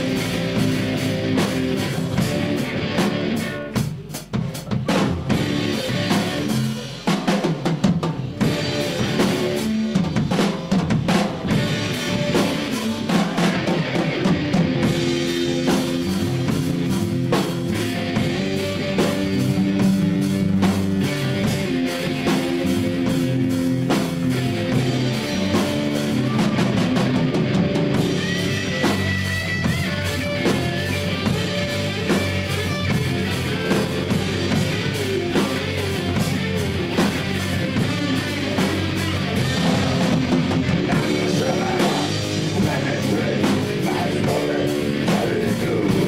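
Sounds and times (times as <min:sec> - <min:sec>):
drum kit: 0:00.0 - 0:46.0
electric guitars: 0:00.0 - 0:46.0.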